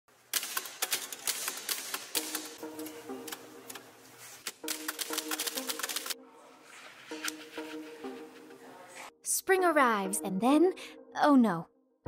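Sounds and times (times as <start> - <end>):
typewriter keys clacking: 0.3 - 3.8, 4.4 - 6.2
music with held notes: 2.2 - 9.1.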